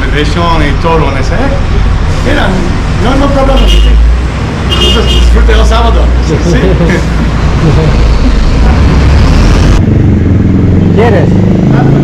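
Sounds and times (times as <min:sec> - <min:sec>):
loud rushing noise: 0:05.4 - 0:12.0.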